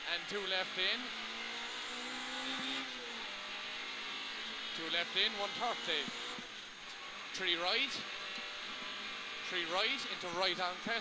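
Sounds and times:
car engine at speed: 0.0s - 11.0s.

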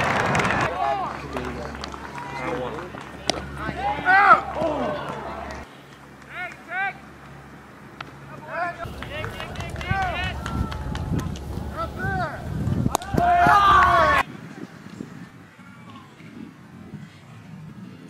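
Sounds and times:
voices calling and shouting: 0.0s - 18.0s
steady low hum: 0.2s - 15.6s.

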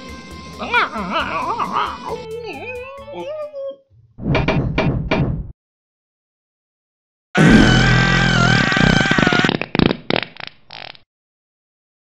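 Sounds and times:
cartoon fart sound effect: 7.4s - 11.1s.

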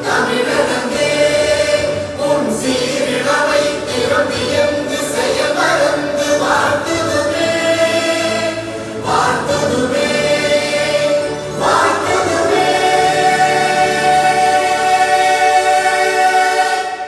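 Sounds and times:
choir singing long held notes: 0.0s - 17.0s.

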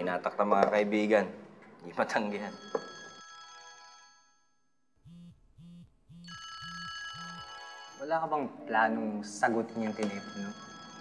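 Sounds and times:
phone ringing with high chirps: 2.4s - 8.6s, 9.5s - 11.0s
phone buzzing on vibrate: 5.0s - 8.0s.

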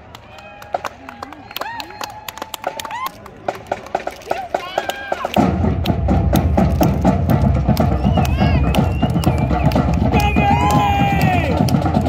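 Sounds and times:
crowd voices: 0.0s - 12.0s
marching band with heavy drums: 3.4s - 12.0s.

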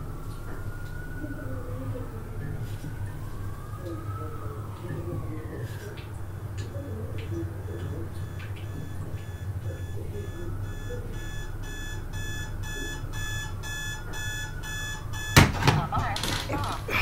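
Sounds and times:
alarm clock beeping: 7.6s - 15.8s.

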